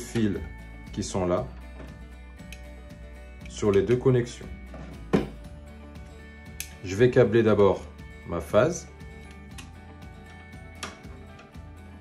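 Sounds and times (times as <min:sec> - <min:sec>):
soft background music: 0:00.0 - 0:12.0
wire clicking into switch terminal: 0:02.4 - 0:02.7, 0:06.5 - 0:06.8, 0:09.2 - 0:09.8, 0:10.8 - 0:11.6.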